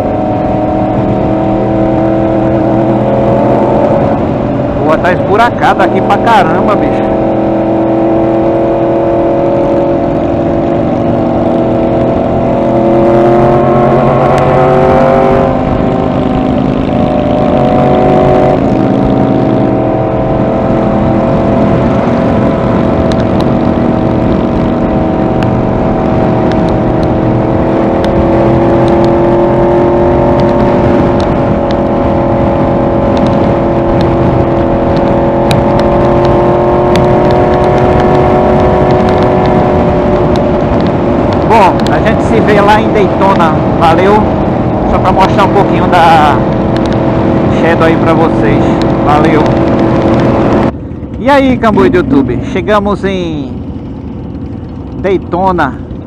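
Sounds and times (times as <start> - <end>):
motorcycle engine cruising: 0.0 - 56.0
road noise: 0.0 - 56.0
wind noise: 0.0 - 56.0.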